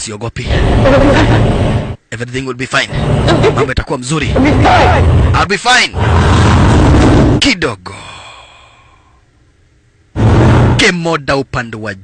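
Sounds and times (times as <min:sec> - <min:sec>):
person exhaling softly: 0:07.9 - 0:09.2.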